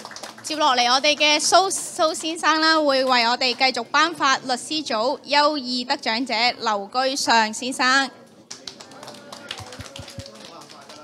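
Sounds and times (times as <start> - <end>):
people clapping: 0.0 - 3.6, 8.4 - 11.0.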